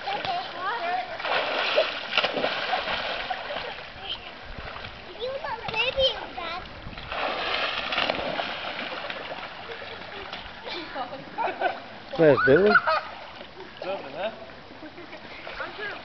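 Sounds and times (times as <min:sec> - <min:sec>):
pool water splashing: 0:00.0 - 0:16.0
people calling: 0:09.6 - 0:14.4.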